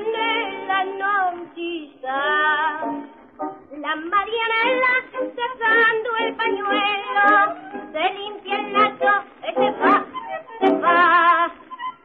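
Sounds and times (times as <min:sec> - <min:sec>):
woman singing with vibrato: 0:00.0 - 0:12.0
tango orchestra: 0:02.5 - 0:12.0.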